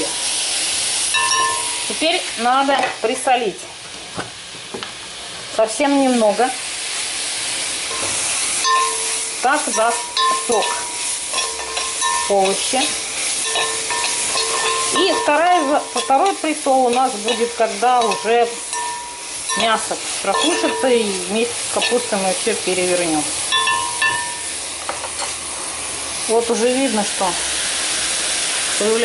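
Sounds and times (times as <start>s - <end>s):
vegetables sizzling in oil: 0.0s - 29.0s
spoon stirring in pan: 7.9s - 22.2s.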